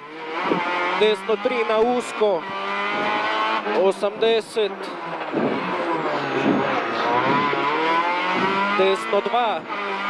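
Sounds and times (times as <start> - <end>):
rally car engine running hard: 0.0 - 10.0.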